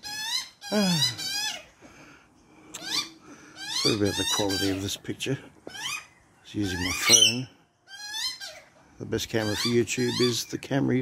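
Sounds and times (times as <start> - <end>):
young magpie begging squawks: 5.7 - 8.7.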